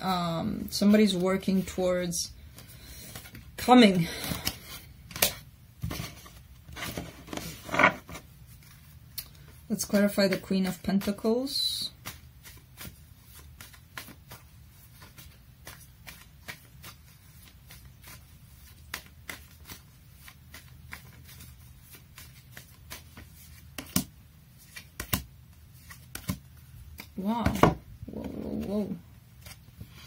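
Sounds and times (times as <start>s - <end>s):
cards being shuffled: 2.4s - 11.2s, 11.8s - 30.0s.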